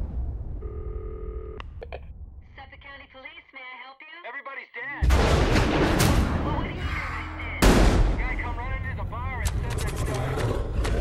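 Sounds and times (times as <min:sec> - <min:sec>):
low rumble: 0:05.1 - 0:11.0.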